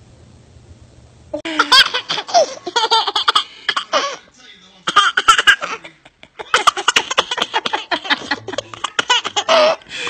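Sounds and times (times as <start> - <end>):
young child laughing: 1.4 - 4.1.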